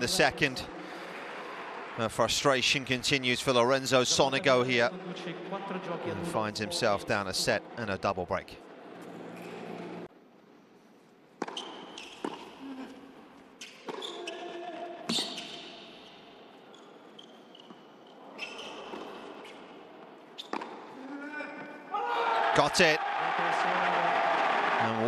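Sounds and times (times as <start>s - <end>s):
tennis ball bouncing on court: 11.4s - 12.6s, 20.4s - 20.8s.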